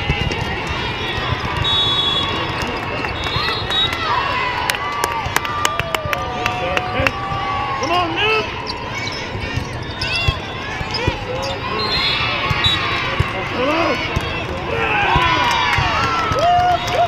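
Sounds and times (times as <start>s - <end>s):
volleyball bouncing on floor: 0.0s - 2.8s, 9.4s - 11.5s, 12.4s - 16.2s.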